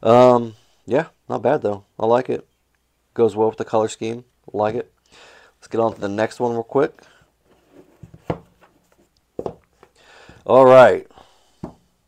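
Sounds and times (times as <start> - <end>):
cardboard box scraping and rubbing: 7.5 - 8.8.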